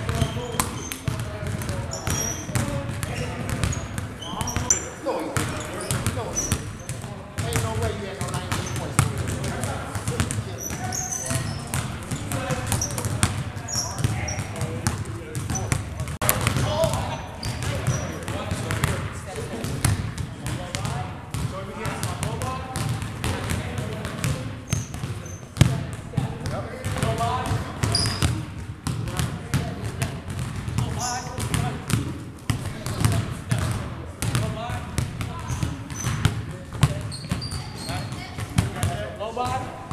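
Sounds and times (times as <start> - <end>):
basketballs bouncing on hardwood: 0.0 - 39.9.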